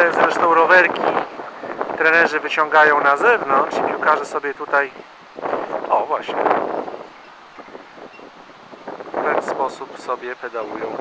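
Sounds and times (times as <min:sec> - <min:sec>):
faint outdoor rush: 0:00.0 - 0:11.0.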